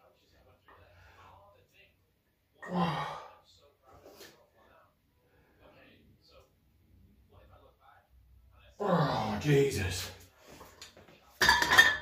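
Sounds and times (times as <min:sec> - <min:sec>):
breathy groan: 0:02.6 - 0:03.3, 0:08.8 - 0:09.4.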